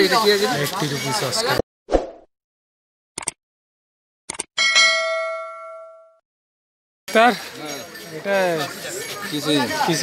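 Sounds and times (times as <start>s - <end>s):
notification bell chime: 4.6s - 6.2s.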